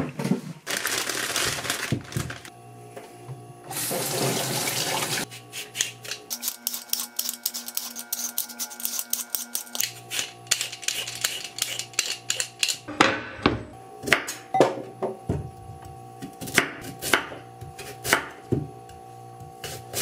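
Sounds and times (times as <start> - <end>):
plastic bag rustling: 0.5 - 2.5
vegetable peeler scraping skin: 5.2 - 12.9.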